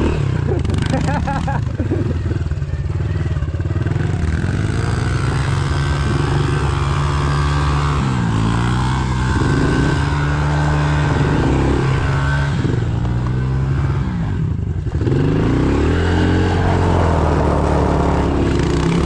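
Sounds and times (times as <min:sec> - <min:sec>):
motorbike engine revving: 0:00.0 - 0:19.0.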